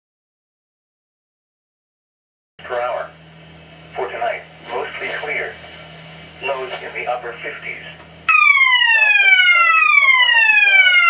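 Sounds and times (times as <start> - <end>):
synthesized voice over loudspeaker: 2.6 - 3.2, 3.9 - 5.7, 6.4 - 8.0
low hum: 2.6 - 10.6.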